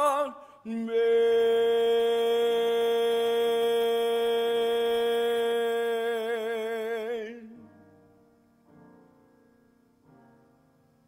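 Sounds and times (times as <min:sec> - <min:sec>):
man singing a long note: 0:00.0 - 0:07.7.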